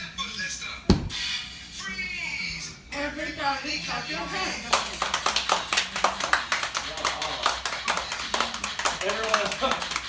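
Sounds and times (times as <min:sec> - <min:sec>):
children clapping: 0:04.7 - 0:10.0.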